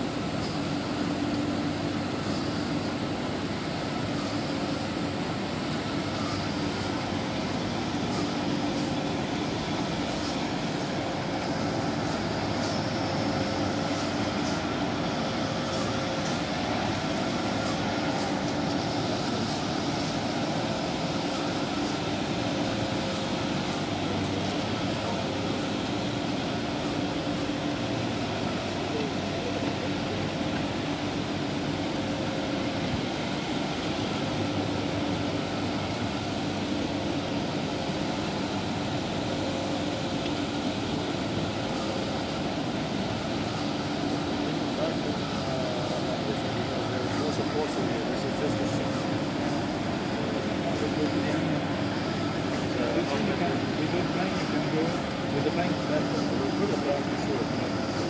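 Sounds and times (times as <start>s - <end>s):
machinery drone: 0.0s - 58.0s.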